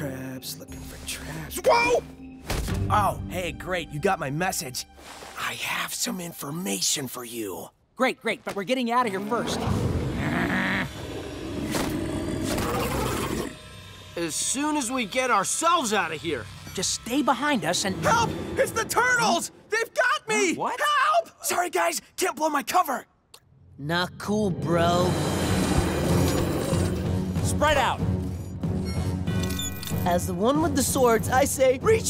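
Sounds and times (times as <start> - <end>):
low sustained music: 0.0 - 6.8, 13.5 - 19.2.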